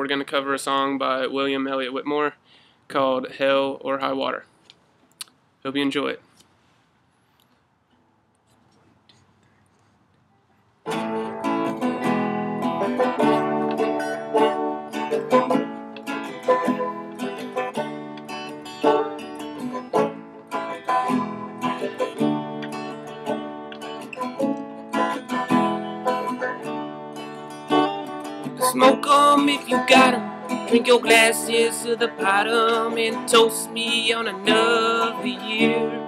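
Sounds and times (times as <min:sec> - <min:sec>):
acoustic guitar: 0:10.8 - 0:36.0
banjo: 0:10.9 - 0:36.0.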